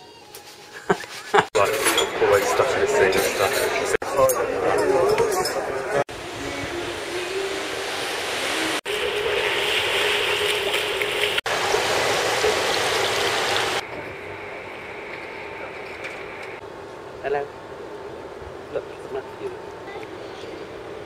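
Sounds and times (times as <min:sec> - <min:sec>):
wind: 0:00.0 - 0:21.0
water rushing: 0:06.1 - 0:13.9.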